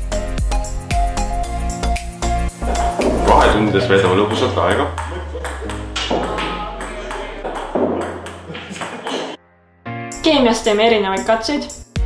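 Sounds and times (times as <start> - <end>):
music with steady beat: 0.0 - 9.4, 10.1 - 12.0.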